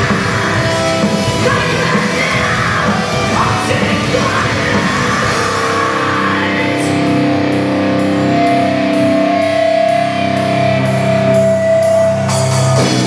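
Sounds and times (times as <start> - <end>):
heavy metal band playing: 0.0 - 13.0
ringing electric guitar chords: 0.0 - 13.0.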